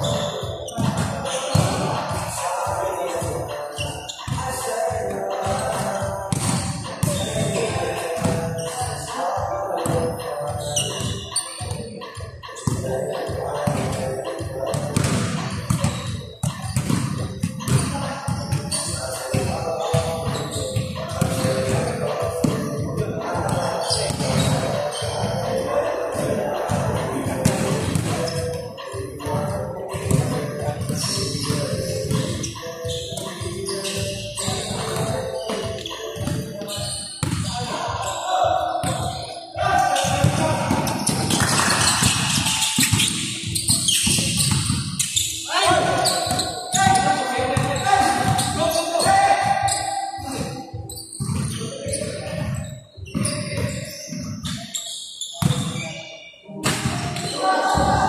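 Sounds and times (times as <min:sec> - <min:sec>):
basketballs bouncing on court: 0:00.0 - 0:55.9, 0:56.6 - 0:58.0.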